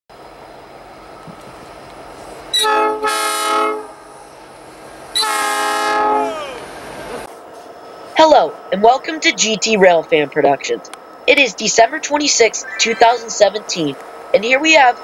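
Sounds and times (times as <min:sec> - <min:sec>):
locomotive air horn blasts: 0:02.5 - 0:04.2, 0:05.2 - 0:06.3.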